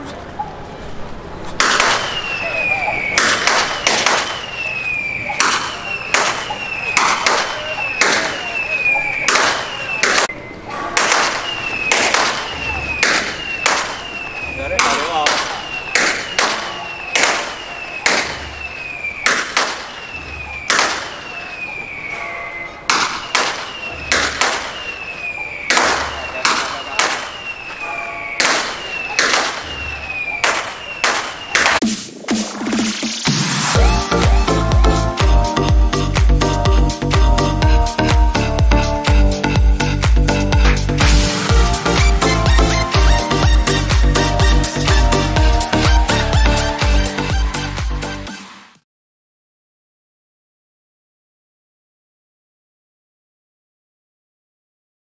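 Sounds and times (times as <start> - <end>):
gongs and cymbals rhythm: 31.8 - 48.4.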